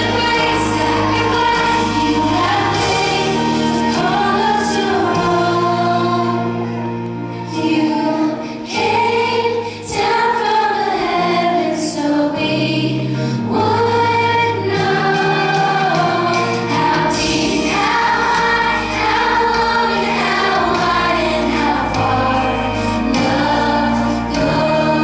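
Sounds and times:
instrumental accompaniment: 0.0s - 11.3s, 13.6s - 25.0s
children's choir singing: 0.0s - 25.0s.

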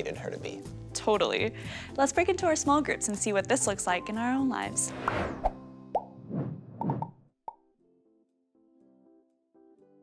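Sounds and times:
whoosh: 4.9s - 5.6s, 6.2s - 7.2s.

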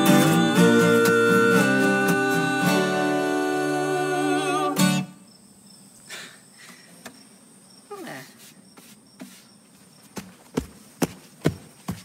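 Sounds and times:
acoustic guitar strumming: 0.0s - 5.3s
crickets chirping: 0.0s - 12.0s.

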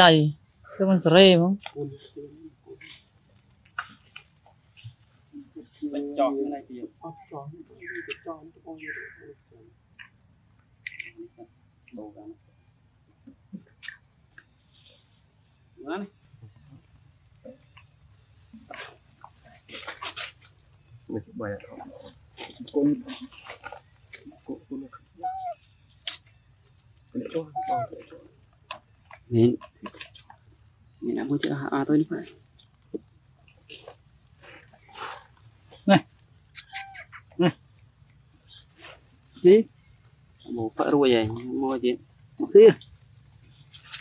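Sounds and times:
baby monkey high cries: 25.1s - 26.2s, 27.4s - 28.1s, 36.6s - 37.2s
monkey sucking and lip-smacking: 25.3s - 26.3s.

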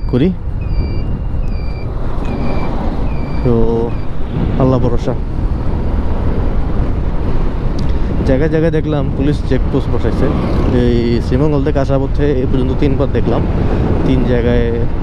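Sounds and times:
short high beeps: 0.0s - 4.1s
wind noise: 0.0s - 15.0s.

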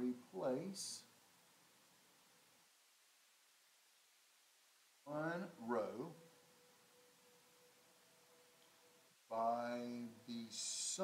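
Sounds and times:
faint high hum: 0.0s - 11.0s.

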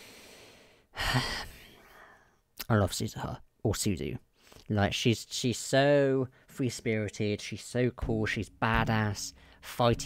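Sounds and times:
woman sighing: 1.0s - 1.8s.

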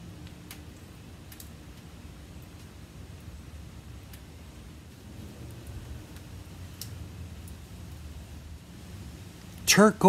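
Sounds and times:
low background rumble: 0.0s - 9.8s.

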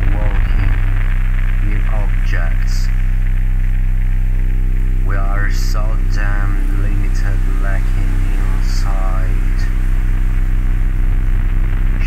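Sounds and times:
low electronic hum: 0.0s - 12.0s
static hiss: 0.0s - 12.0s.

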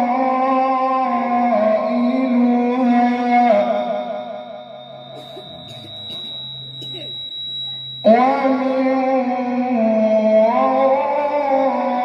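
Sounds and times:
low hum through sound system: 0.0s - 12.0s
high-pitched tone: 1.9s - 11.0s
person reciting melodically: 8.0s - 12.0s.

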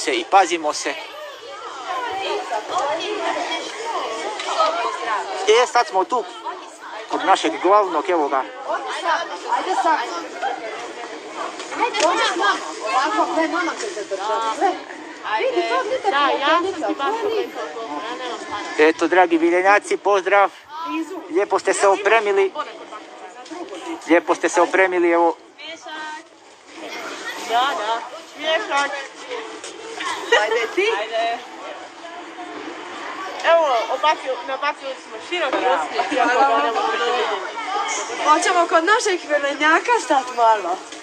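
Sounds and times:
people talking over one another: 0.0s - 41.0s.

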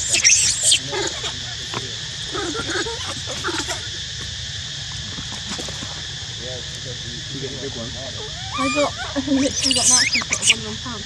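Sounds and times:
faint voices: 0.0s - 11.0s
high insect drone: 0.0s - 11.0s.

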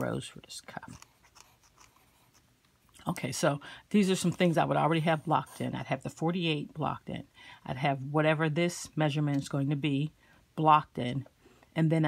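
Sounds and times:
pencil scratching on paper: 0.9s - 2.5s.

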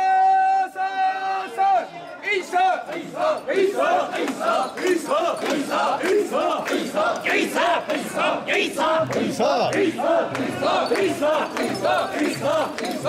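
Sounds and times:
crowd shouting rhythmic chant: 0.0s - 13.0s.

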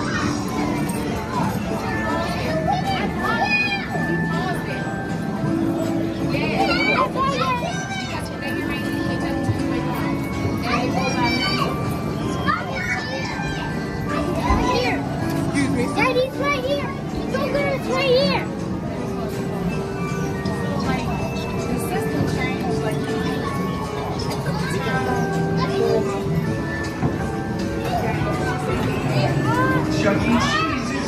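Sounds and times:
children's voices: 6.4s - 8.8s, 9.5s - 18.8s, 22.0s - 31.0s.

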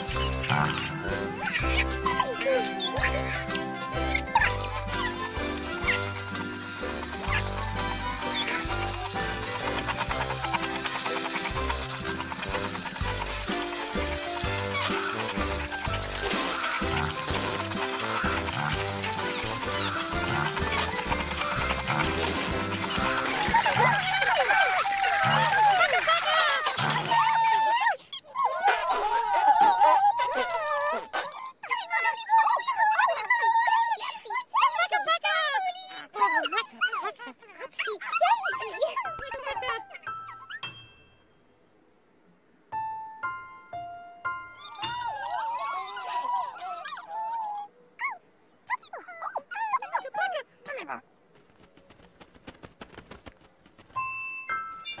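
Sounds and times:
light music: 0.0s - 25.9s, 42.7s - 45.6s
squeaky character voices babbling: 0.0s - 40.8s, 44.6s - 51.0s, 54.8s - 55.0s
quick run of clicks: 5.5s - 27.3s, 51.3s - 54.2s.

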